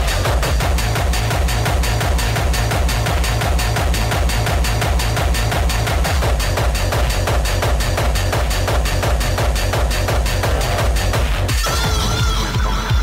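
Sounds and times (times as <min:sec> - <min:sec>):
fast techno music: 0:00.0 - 0:13.0.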